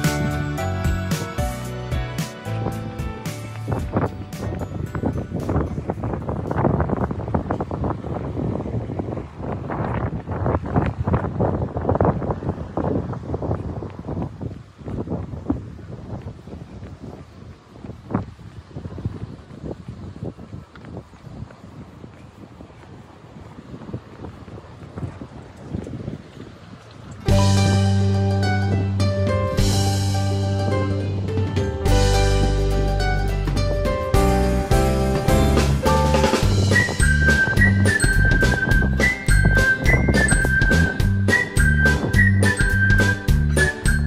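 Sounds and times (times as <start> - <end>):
background music: 0.0 - 6.0, 27.3 - 44.0
wind buffeting microphone: 0.0 - 44.0.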